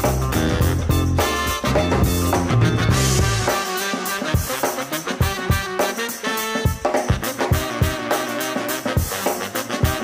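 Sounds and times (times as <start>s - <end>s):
swing music with brass: 0.0s - 10.0s.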